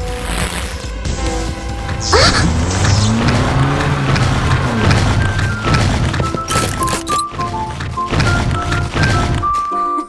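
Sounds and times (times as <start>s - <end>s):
car engine running: 1.0s - 9.4s.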